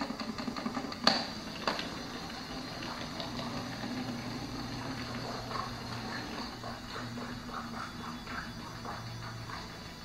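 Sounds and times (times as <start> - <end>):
toy motor whirring: 0.0 - 10.0.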